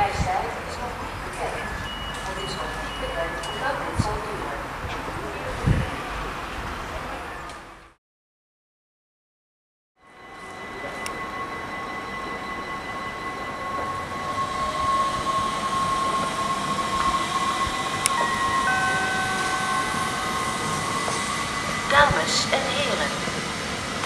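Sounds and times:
train electric whine: 0:10.0 - 0:24.0
train wheels rumbling on rails: 0:10.3 - 0:24.0.

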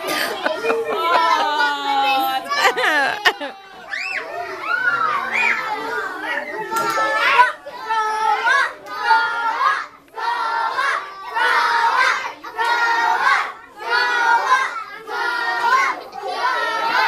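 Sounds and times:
children shouting: 0:00.0 - 0:17.0.

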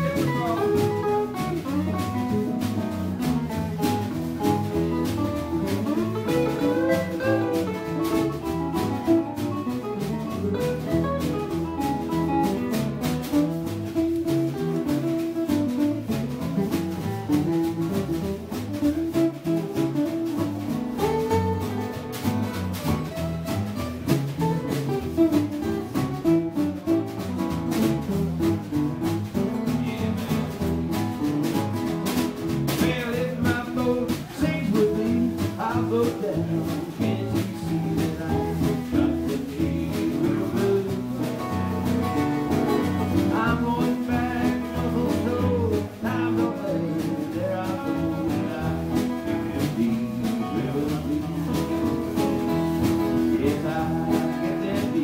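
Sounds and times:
acoustic guitars picking: 0:00.0 - 0:55.0
bass: 0:00.0 - 0:55.0
drum kit beat: 0:00.0 - 0:55.0.

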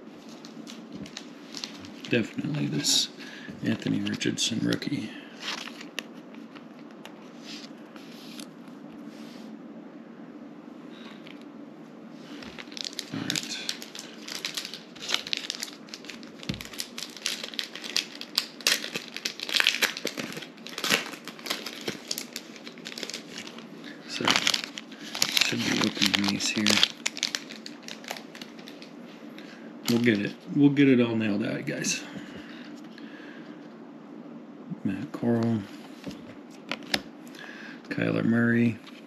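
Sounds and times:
plastic wrapper crinkling: 0:00.2 - 0:02.8, 0:03.7 - 0:07.8, 0:12.3 - 0:29.0, 0:29.9 - 0:30.3.

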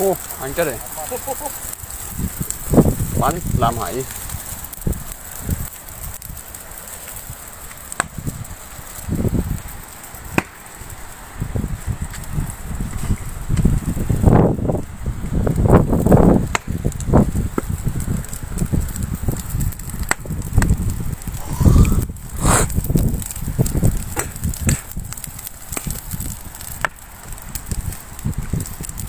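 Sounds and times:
fire burning: 0:00.0 - 0:29.0
fire cracking: 0:00.0 - 0:29.0
wind rumbling on microphone: 0:00.0 - 0:29.0.

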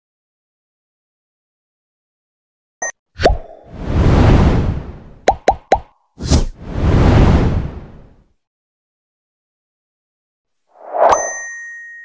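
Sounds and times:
swelling whoosh: 0:03.6 - 0:05.2, 0:06.2 - 0:08.2
quick plops with falling pitch: 0:05.3 - 0:05.9.

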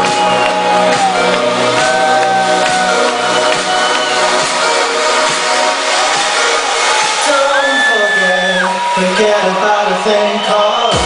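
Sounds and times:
electronic dance music synth: 0:00.0 - 0:11.0.

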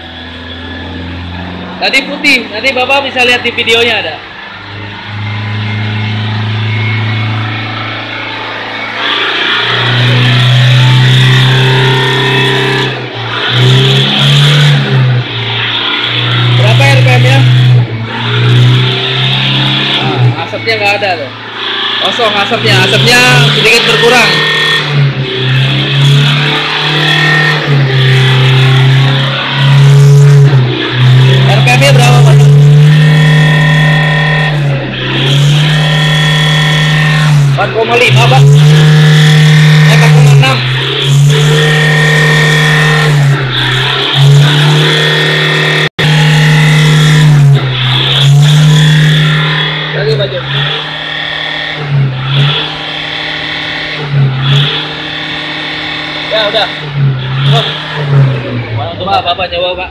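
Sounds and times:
diesel engine revving: 0:00.0 - 0:59.9.

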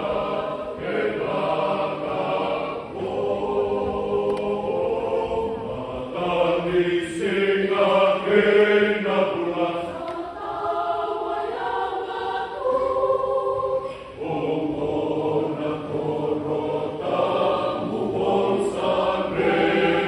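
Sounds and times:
choir singing in parts: 0:00.0 - 0:20.0.

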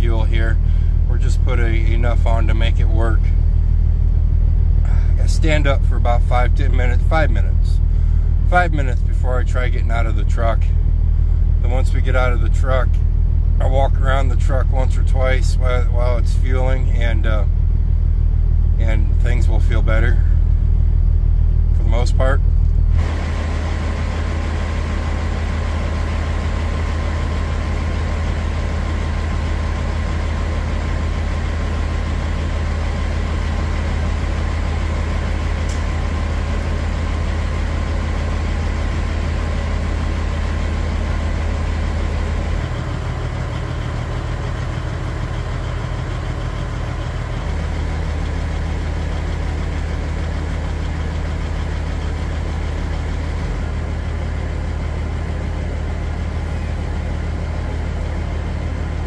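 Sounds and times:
diesel truck engine idling: 0:00.0 - 0:59.0.

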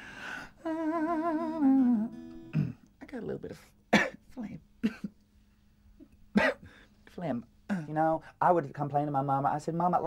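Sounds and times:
breath: 0:00.0 - 0:00.6, 0:06.6 - 0:07.0
person humming with vibrato: 0:00.6 - 0:02.7.

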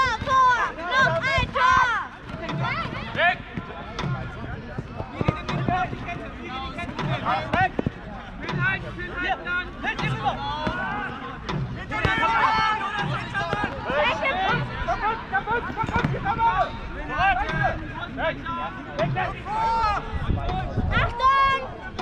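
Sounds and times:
players shouting: 0:00.0 - 0:22.0.

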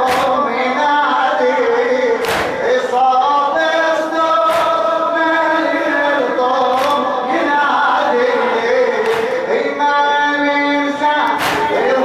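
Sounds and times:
men striking their chests: 0:00.0 - 0:01.1, 0:02.2 - 0:03.4, 0:04.2 - 0:05.8, 0:06.4 - 0:09.8, 0:11.2 - 0:12.0
crowd of men chanting: 0:00.0 - 0:12.0.

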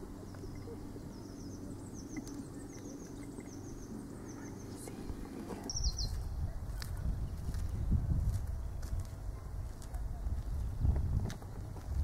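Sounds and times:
low steady rumble: 0:00.0 - 0:12.0
small bird chirping: 0:00.2 - 0:07.8.

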